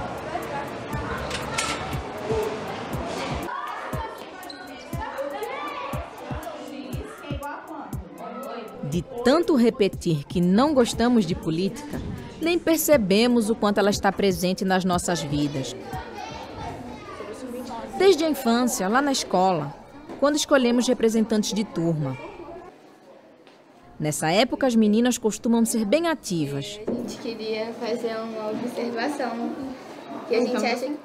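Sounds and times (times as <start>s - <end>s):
children's voices: 0.0s - 9.9s, 10.5s - 23.0s, 26.7s - 31.0s
deep thumping beat: 5.0s - 5.2s, 5.9s - 8.2s, 8.8s - 16.2s.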